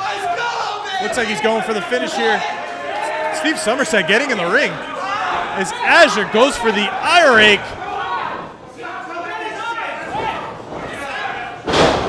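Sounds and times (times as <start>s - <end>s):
body slamming onto wrestling ring: 11.6s - 12.0s.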